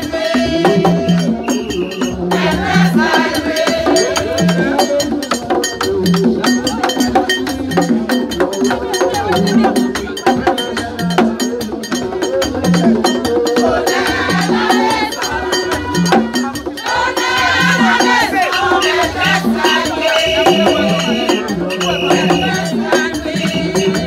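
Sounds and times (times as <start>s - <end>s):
group voices singing: 0.0s - 9.8s, 10.4s - 24.0s
rapid clicking percussion: 0.0s - 24.0s.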